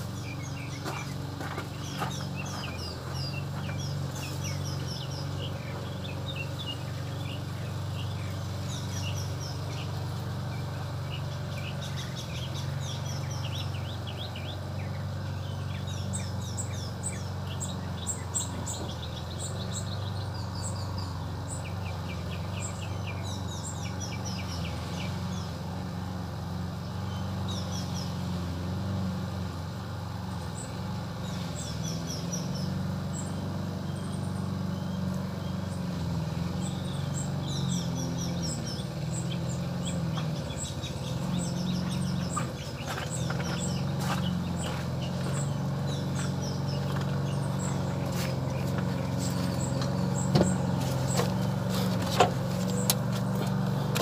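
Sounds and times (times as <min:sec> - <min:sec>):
small birds chirping: 0:00.0 - 0:54.0.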